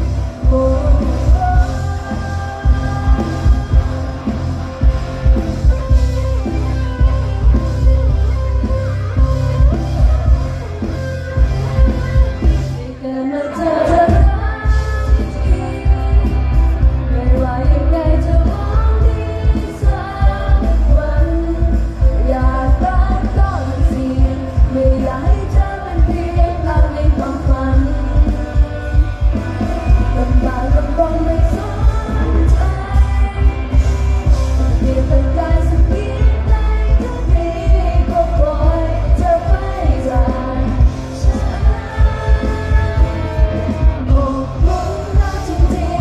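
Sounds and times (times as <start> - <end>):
heavy pulsing bass beat: 0.0 - 12.8
loud bass and drum beat: 0.0 - 12.8, 13.8 - 46.0
live pop song with singing: 0.0 - 46.0.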